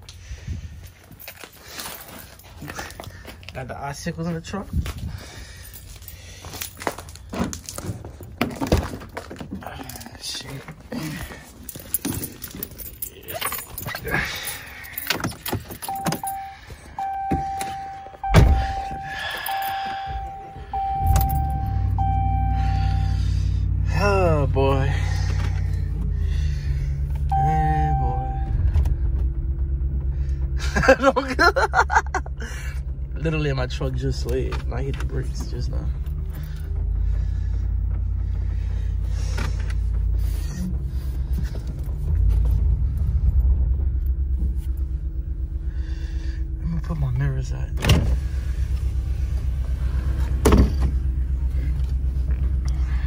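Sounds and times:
keys jangling: 11.4 - 17.8
engine starting and idling: 14.0 - 53.0
warning chime beeps: 15.8 - 23.6, 27.3 - 28.7
car door thudding shut: 18.3 - 18.9.

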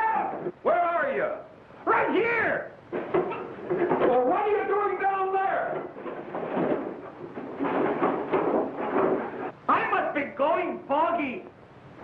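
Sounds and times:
bodies struggling and blows: 5.8 - 9.5.

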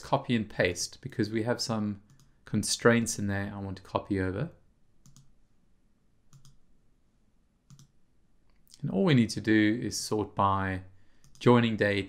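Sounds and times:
computer mouse clicks: 2.1 - 2.4, 5.0 - 5.3, 6.3 - 6.6, 7.7 - 8.7, 11.2 - 11.5.

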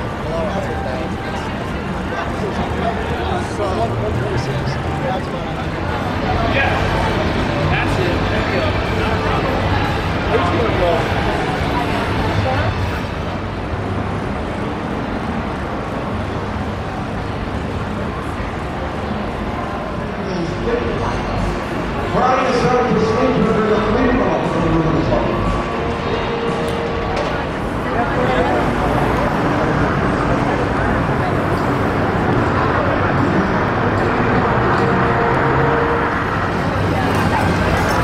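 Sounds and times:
passing traffic: 0.0 - 38.0
people's voices: 0.0 - 38.0.

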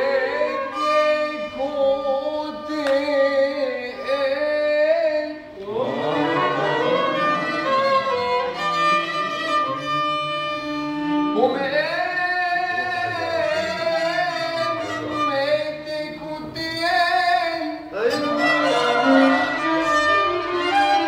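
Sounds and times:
violins playing a melody: 0.0 - 3.2, 5.8 - 16.6, 18.0 - 21.0.

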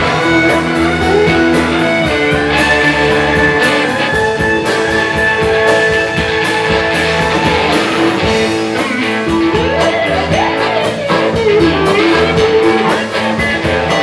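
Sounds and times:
blues band playing: 0.0 - 14.0
pedal steel guitar: 0.0 - 14.0.

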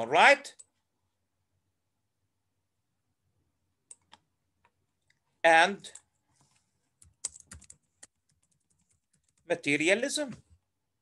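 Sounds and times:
computer keyboard typing: 7.0 - 9.5.

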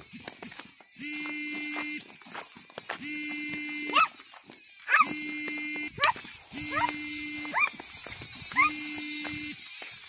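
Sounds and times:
electronic buzzing tone: 1.0 - 2.2, 2.9 - 4.2, 4.8 - 9.9.

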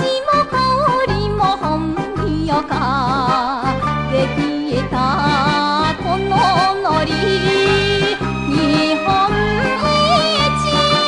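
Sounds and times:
woman singing: 0.0 - 11.0
orchestral accompaniment: 3.8 - 11.0.

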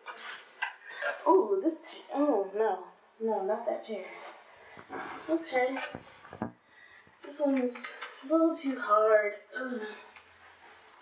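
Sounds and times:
woman's voice: 1.1 - 4.3, 5.3 - 6.0, 7.2 - 10.1.

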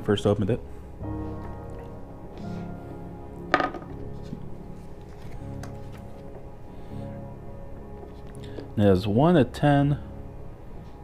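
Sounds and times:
soft background music: 0.0 - 11.0
figurine knocking on wooden table: 3.5 - 4.0.

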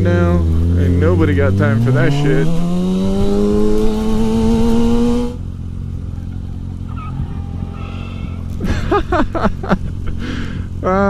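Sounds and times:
motorcycle engine under throttle: 0.0 - 11.0.

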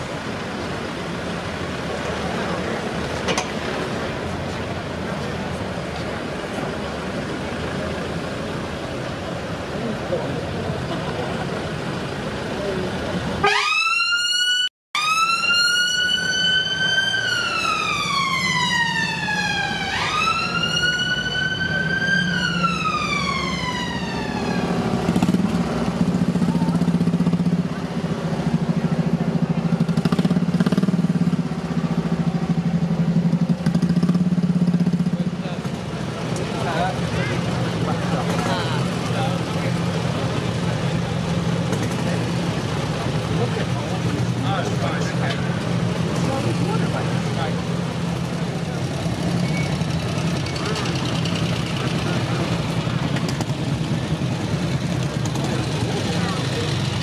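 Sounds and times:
vehicle engines in traffic: 0.0 - 57.0
siren wailing: 13.4 - 25.0.

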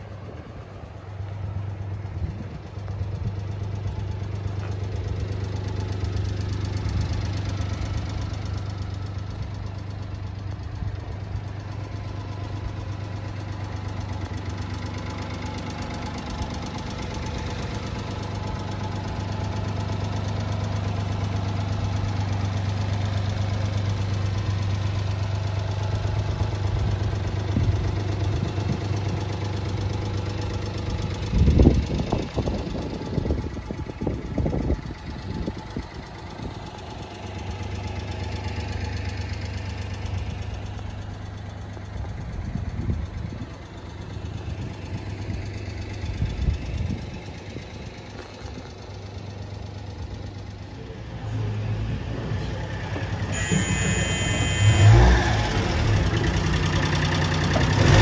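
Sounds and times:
small engine idling: 0.0 - 58.0.

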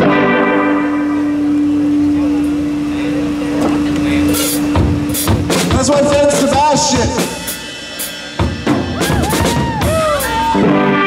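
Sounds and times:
electric guitar note ringing: 0.0 - 7.9.

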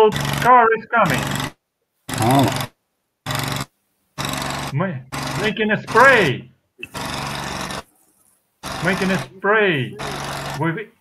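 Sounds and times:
insecticide sprayer mechanical drone: 8.6 - 9.3, 9.9 - 10.6.

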